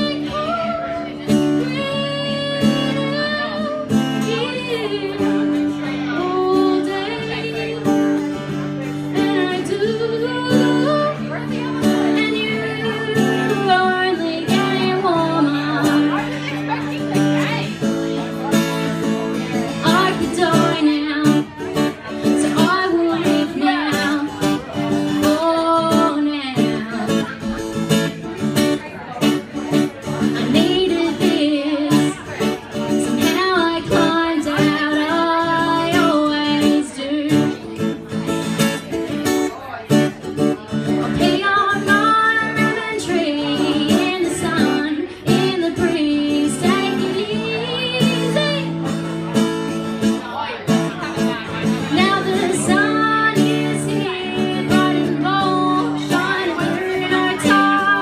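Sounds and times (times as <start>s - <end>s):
woman singing: 0.0s - 17.8s, 19.4s - 27.7s, 29.8s - 38.0s, 40.7s - 49.0s, 51.6s - 58.0s
acoustic guitar strumming: 0.0s - 58.0s.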